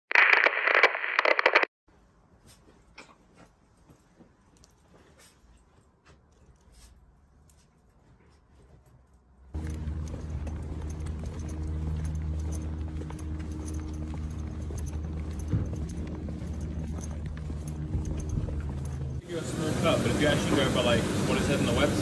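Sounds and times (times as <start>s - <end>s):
footsteps on asphalt: 9.5s - 19.2s
traffic engine hum: 9.5s - 22.0s.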